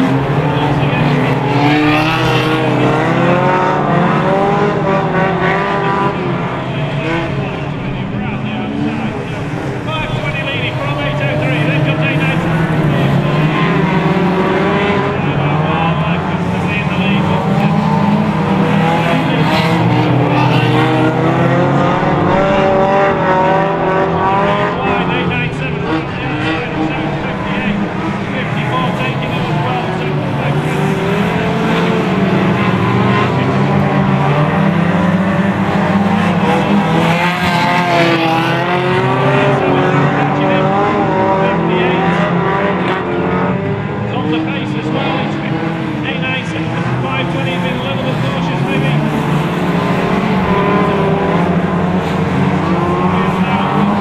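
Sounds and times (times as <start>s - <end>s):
race car engines running hard: 0.0s - 54.0s.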